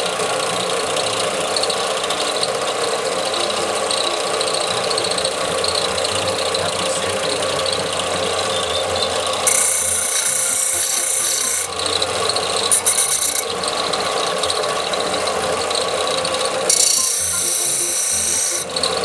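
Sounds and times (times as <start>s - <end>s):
belt sander running: 0.0s - 19.0s
high-pitched grinding hiss: 0.0s - 19.0s
metal grinding on sanding belt: 0.6s - 19.0s.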